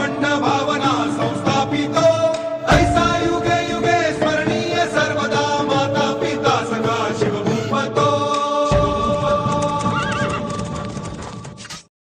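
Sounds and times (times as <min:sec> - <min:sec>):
background music: 0:00.0 - 0:11.9
hoofbeats: 0:08.9 - 0:11.8
horse whinnying: 0:09.8 - 0:10.7.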